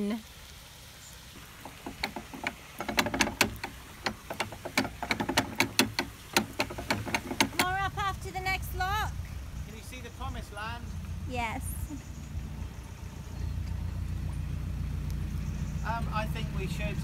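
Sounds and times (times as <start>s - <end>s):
boat diesel engine running: 1.4s - 17.0s
sharp clicks and knocks of gear: 1.5s - 7.9s.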